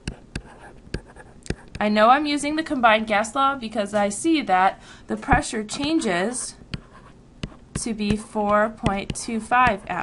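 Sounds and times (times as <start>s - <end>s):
stylus scratching: 0.0s - 1.9s, 5.8s - 10.0s
stylus tapping on tablet: 0.0s - 1.9s, 6.7s - 10.0s.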